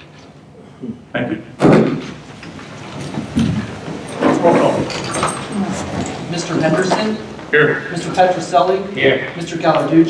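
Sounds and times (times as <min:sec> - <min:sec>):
chairs scraping on floor: 0:02.1 - 0:07.5.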